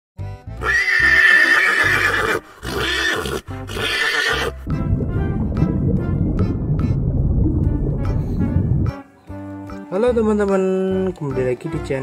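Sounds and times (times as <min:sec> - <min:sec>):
background music: 0:00.2 - 0:12.0
horse neighing: 0:00.6 - 0:04.6.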